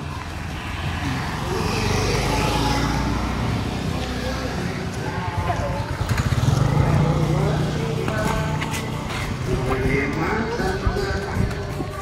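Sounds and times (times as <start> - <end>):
faint background voices: 0.0 - 12.0
vehicle engine running: 0.0 - 12.0.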